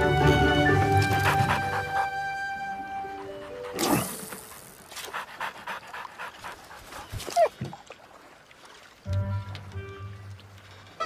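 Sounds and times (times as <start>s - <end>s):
cartoon dog panting: 0.9s - 7.2s.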